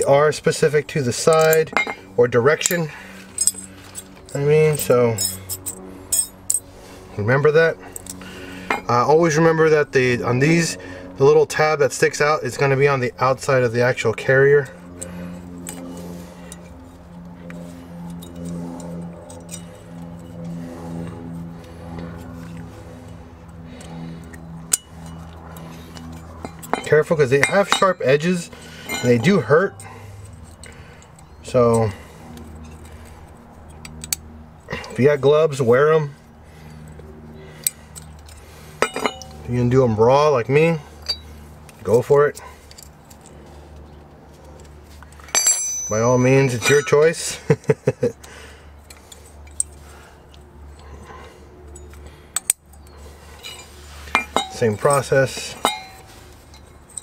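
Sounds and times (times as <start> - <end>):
pulsing low hum: 0.0 - 57.0
metal wrench clinking on stone: 1.2 - 6.7, 18.1 - 19.8, 24.7 - 31.9, 37.6 - 39.5, 41.0 - 41.3, 45.1 - 47.3, 51.7 - 57.0.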